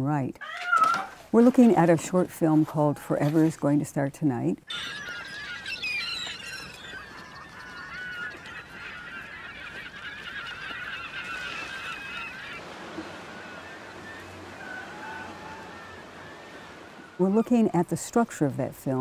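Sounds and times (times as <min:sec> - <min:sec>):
gulls squawking: 0:04.6 - 0:19.0.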